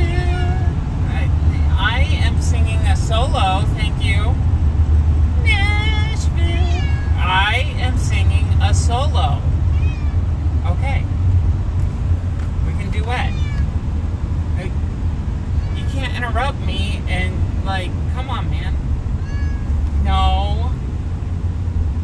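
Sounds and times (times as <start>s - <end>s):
car driving drone: 0.0s - 22.0s
cat meowing: 5.7s - 7.4s, 9.7s - 10.3s, 13.2s - 13.8s, 15.4s - 16.1s, 19.2s - 20.2s.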